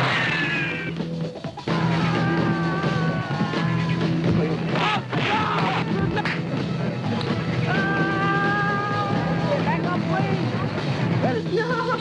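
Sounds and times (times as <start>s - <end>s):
people crying out and shouting: 0.0s - 1.0s, 1.6s - 12.0s.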